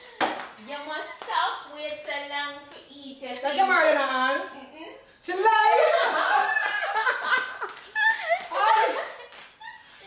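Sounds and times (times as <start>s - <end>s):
women laughing loudly: 5.7s - 9.9s.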